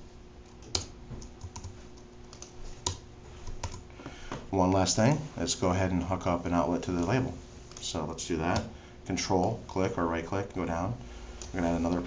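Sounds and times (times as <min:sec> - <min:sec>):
typing on computer keyboard: 0:00.5 - 0:03.0.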